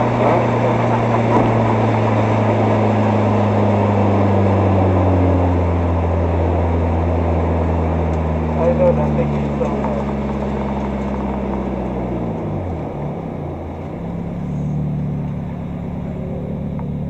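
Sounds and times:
race car engine from inside: 0:00.0 - 0:17.0
wind and road noise: 0:00.0 - 0:17.0.

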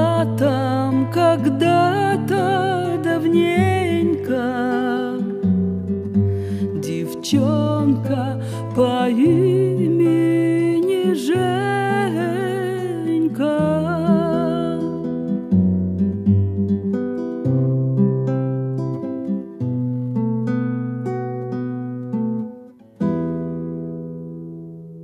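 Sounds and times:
acoustic guitar playing: 0:00.0 - 0:25.0.

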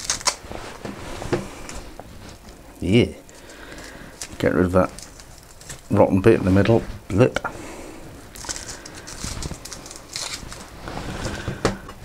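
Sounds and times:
onion skin peeling crackling: 0:00.0 - 0:00.8, 0:01.5 - 0:06.8, 0:08.2 - 0:12.0.

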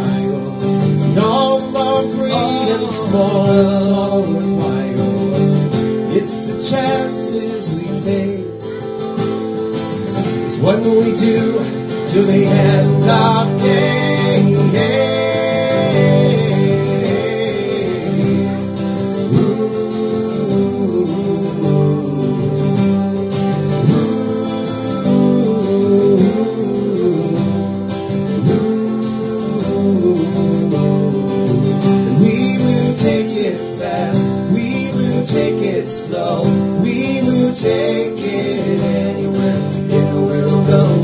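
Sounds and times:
person singing: 0:00.0 - 0:09.0, 0:10.2 - 0:41.0
acoustic guitars strummed: 0:00.0 - 0:41.0.

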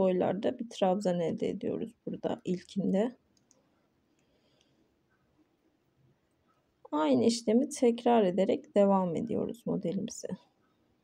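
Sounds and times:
person speaking: 0:00.0 - 0:03.2, 0:06.9 - 0:10.5.

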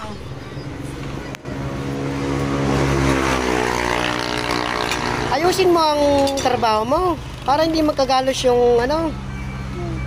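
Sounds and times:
vehicle engine passing by: 0:00.0 - 0:10.0.

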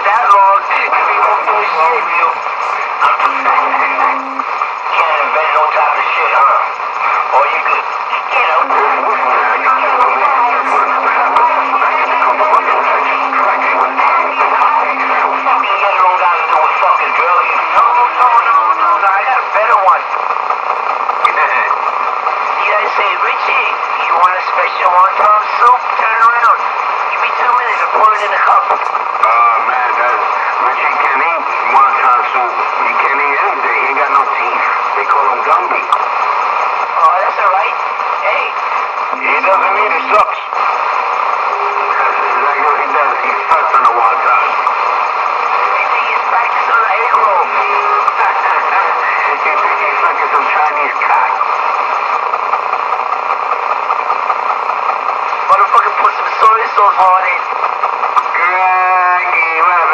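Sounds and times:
talking through small loudspeaker: 0:00.0 - 0:52.6.

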